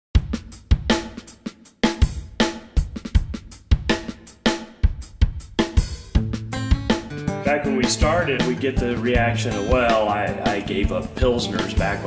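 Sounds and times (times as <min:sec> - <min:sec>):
kick drum: 0:00.2 - 0:01.2, 0:02.0 - 0:04.2, 0:04.8 - 0:07.1
hi-hat hits: 0:00.2 - 0:12.0.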